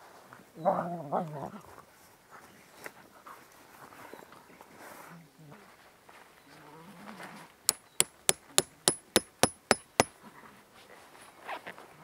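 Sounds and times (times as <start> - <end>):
hammer striking metal tent stake: 7.7 - 10.1.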